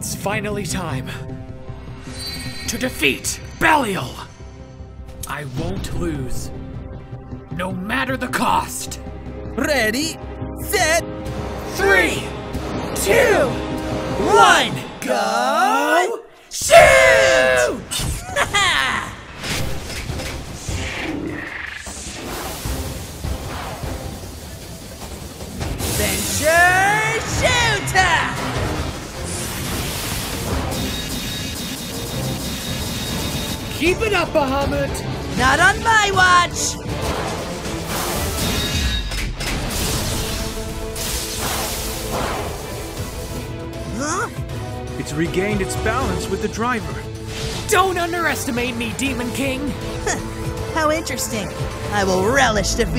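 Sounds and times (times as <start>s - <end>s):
background music: 0.0s - 52.9s
whooshes: 19.4s - 25.0s.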